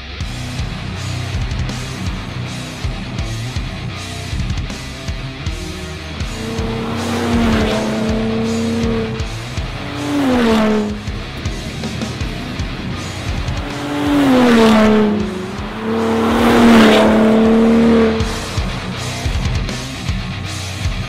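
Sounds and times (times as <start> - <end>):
background music: 0.0 - 21.0
pickup truck engine revving: 0.0 - 21.0.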